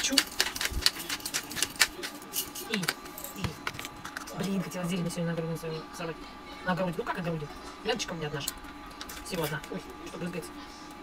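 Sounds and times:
pepper mill grinding clicks: 0.0s - 3.0s.

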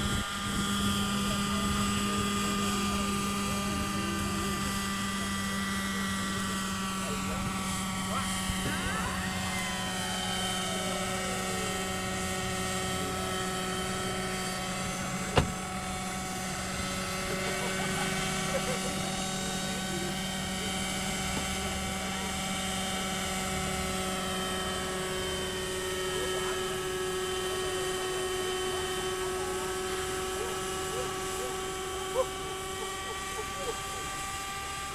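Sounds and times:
model helicopter engine and rotors: 0.0s - 34.9s.

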